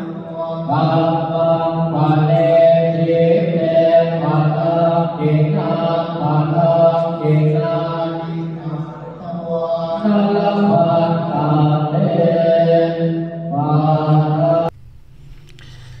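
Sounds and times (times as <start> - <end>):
ritual chanting on long tones: 0.0 - 14.7.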